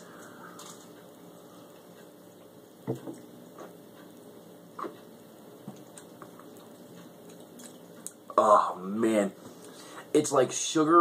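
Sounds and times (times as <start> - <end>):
faint room hiss: 0.0 - 11.0
man sipping and swallowing: 4.7 - 5.1.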